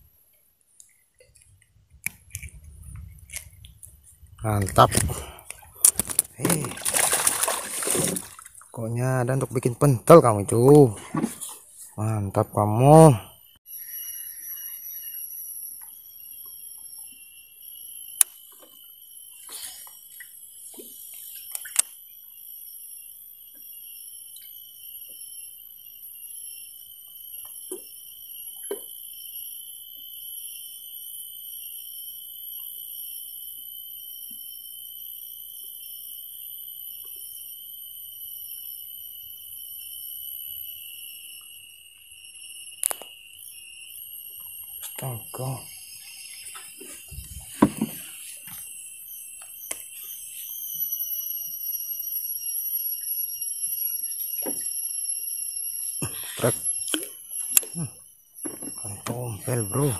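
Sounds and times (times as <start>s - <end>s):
cicadas chorus: 0.8s - 59.9s.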